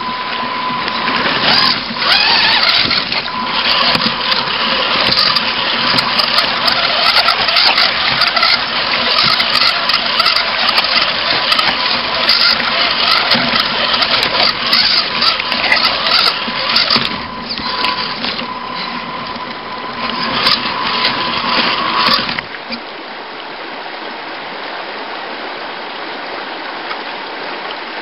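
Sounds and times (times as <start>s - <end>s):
electric motors whining: 0.0s - 22.8s
water splashing: 0.0s - 23.3s
tires clattering over rocks: 0.8s - 22.5s.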